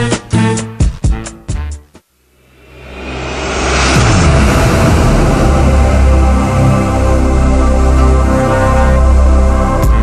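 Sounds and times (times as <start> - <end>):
electronic drone with deep bass: 2.3 - 10.0
rising whoosh: 2.4 - 8.4.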